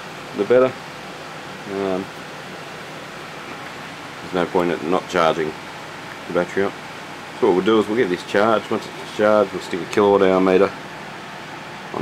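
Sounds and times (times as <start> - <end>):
room noise hiss: 0.0 - 12.0.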